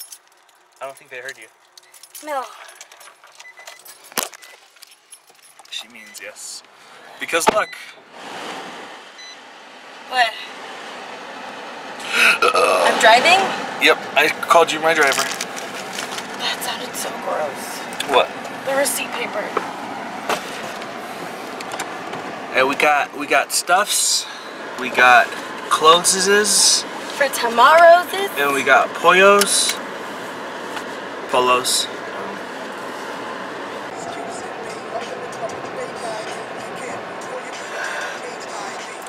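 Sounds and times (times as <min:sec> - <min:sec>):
light clicks and rattles: 0:00.0 - 0:06.7
car cabin noise: 0:02.0 - 0:39.0.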